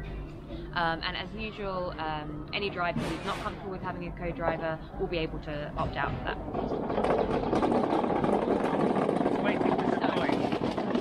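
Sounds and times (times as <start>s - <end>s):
machinery rumble: 0.0s - 11.0s.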